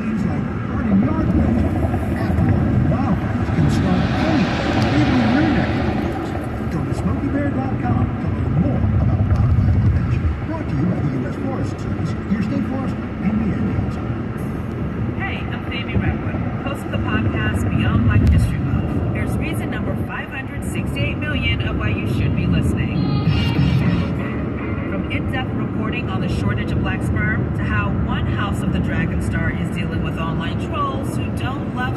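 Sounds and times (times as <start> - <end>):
road noise: 0.0 - 31.9.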